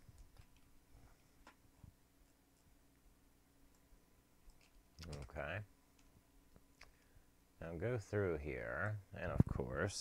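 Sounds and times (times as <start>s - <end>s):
computer clicks: 4.5s - 6.1s
person speaking: 4.5s - 6.1s, 7.6s - 10.0s.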